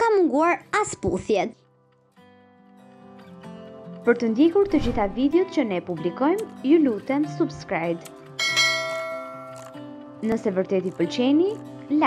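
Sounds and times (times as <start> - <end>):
bright bell chime: 8.4 - 9.6.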